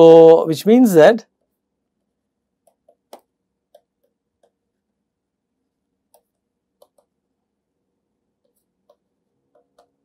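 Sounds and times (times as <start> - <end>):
stylus tapping tablet screen: 1.3 - 4.8, 6.0 - 7.3, 8.4 - 10.0.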